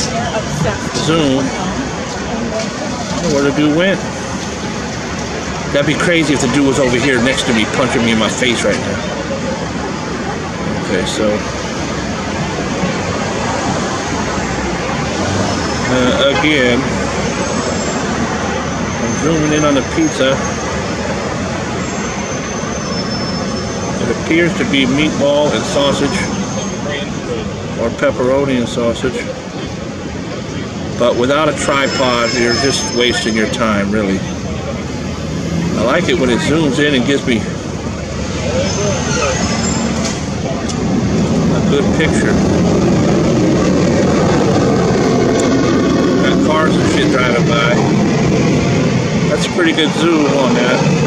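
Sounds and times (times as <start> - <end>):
passing street traffic: 0.0 - 51.0.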